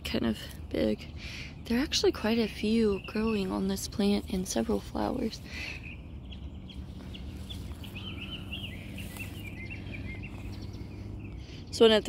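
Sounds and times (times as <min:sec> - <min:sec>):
steady low rumble: 0:00.0 - 0:12.0
songbird chirping: 0:00.1 - 0:12.0.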